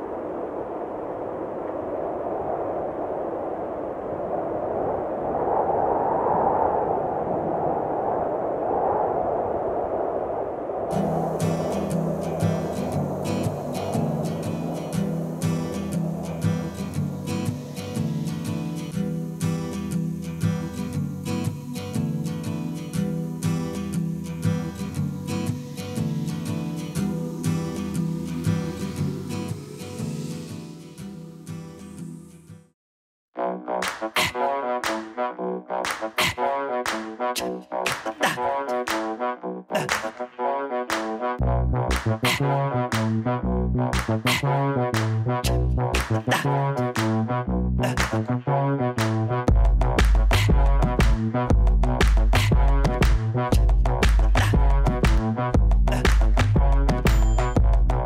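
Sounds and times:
rushing noise: 0.0s - 31.6s
acoustic guitar strumming: 10.9s - 32.6s.

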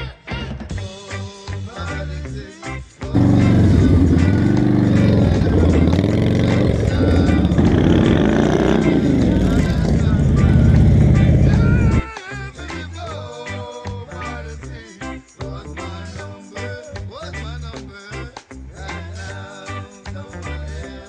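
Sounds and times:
motorcycles passing by: 3.2s - 12.0s.

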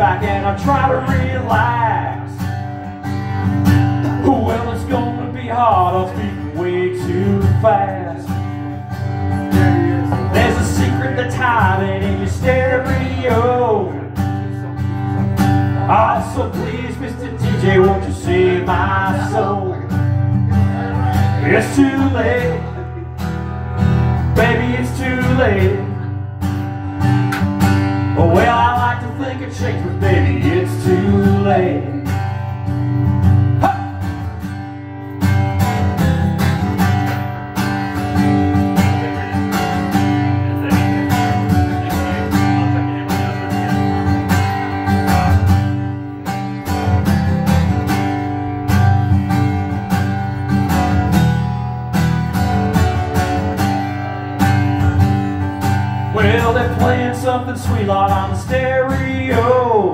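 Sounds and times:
guitar strummed: 0.0s - 59.9s.

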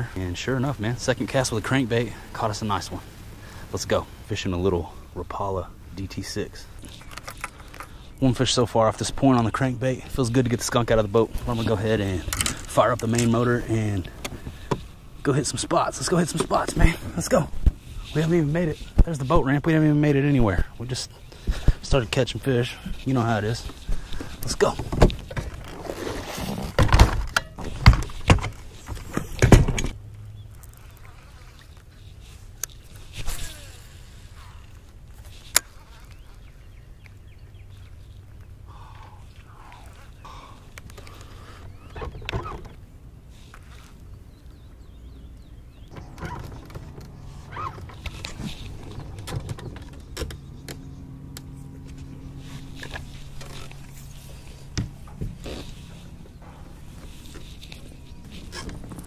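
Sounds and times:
knocks and thumps of fishing gear: 26.7s - 30.0s
steady low hum: 44.0s - 59.0s.

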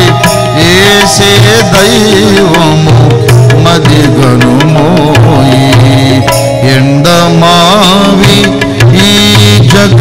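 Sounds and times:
hand drum beats: 0.0s - 10.0s
instrumental accompaniment: 0.0s - 10.0s
man singing: 0.0s - 10.0s.

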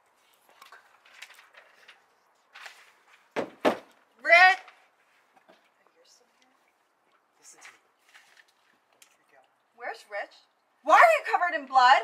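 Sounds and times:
paper pages rustling: 0.2s - 3.3s, 7.7s - 8.9s.

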